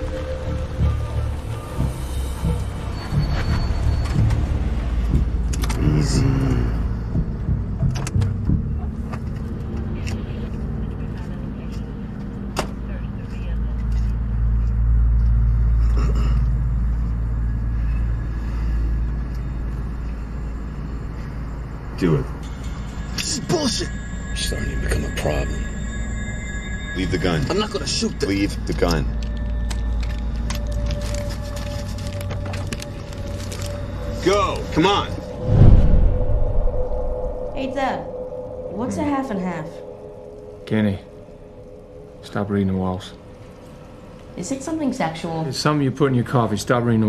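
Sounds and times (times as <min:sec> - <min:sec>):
background music: 0:00.0 - 0:36.9.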